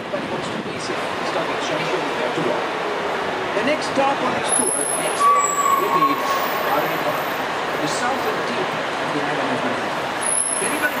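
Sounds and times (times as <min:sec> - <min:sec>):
traffic and bus drone: 0:00.0 - 0:11.0.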